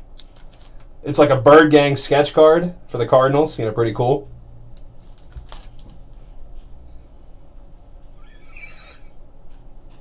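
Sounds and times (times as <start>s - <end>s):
short breathy laugh: 8.0s - 9.3s.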